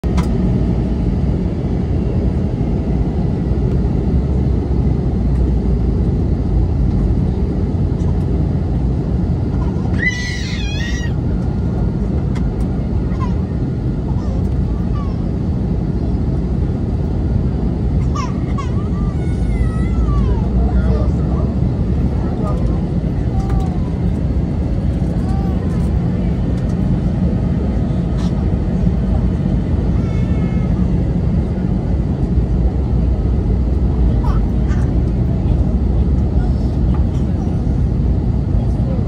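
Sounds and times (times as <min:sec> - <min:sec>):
airliner cabin engine rumble: 0:00.0 - 0:39.0.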